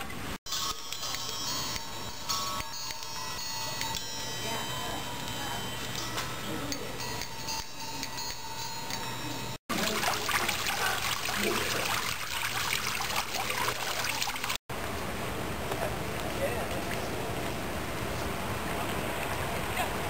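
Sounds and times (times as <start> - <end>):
metal disc chimes ringing: 0.5 - 9.6
water trickling over rocks: 9.7 - 14.6.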